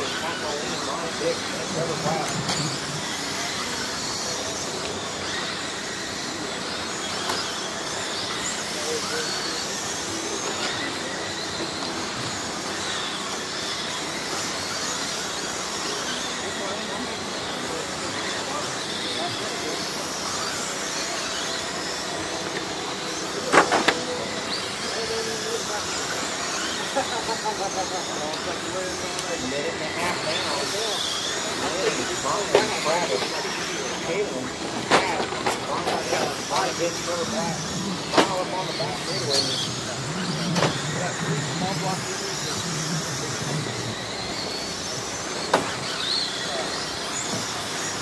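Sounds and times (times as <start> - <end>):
radio-controlled car motors whining: 0.0 - 48.0.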